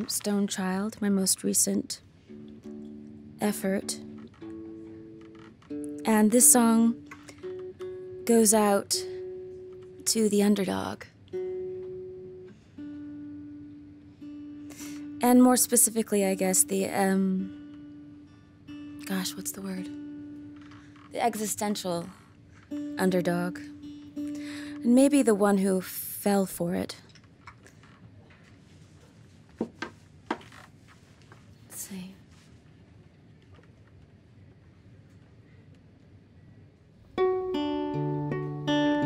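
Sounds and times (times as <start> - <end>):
guitar notes picked: 2.2 - 25.4, 37.1 - 39.0.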